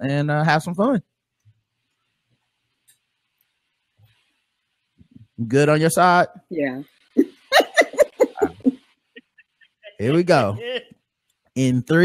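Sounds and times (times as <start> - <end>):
person laughing: 7.3 - 8.8, 9.9 - 10.6.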